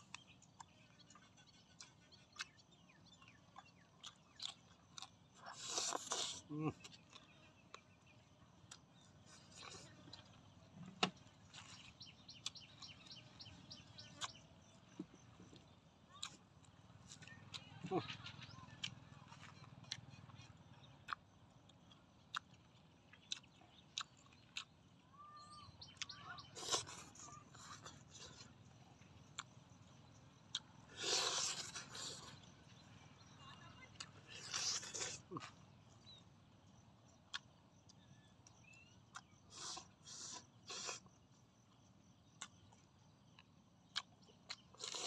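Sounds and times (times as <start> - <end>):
wet chewing with mouth clicks: 0.0 - 25.0, 25.8 - 36.2, 37.0 - 45.0
teeth tearing meat with slurping: 4.1 - 7.3, 26.5 - 28.4, 31.0 - 32.4, 34.0 - 35.5, 43.9 - 45.0.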